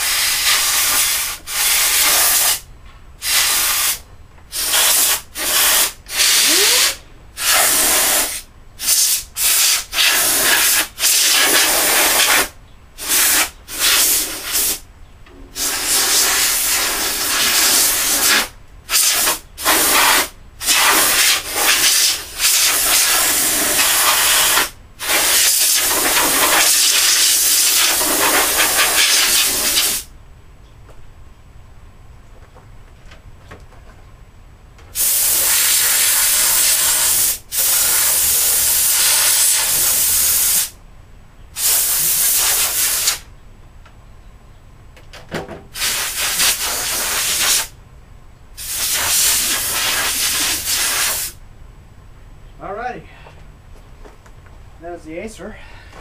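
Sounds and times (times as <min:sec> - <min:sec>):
compressed air blow gun hissing: 0:00.0 - 0:02.6, 0:03.2 - 0:14.8, 0:15.6 - 0:30.1, 0:35.0 - 0:40.8, 0:41.6 - 0:43.3, 0:45.8 - 0:47.8, 0:48.6 - 0:51.4.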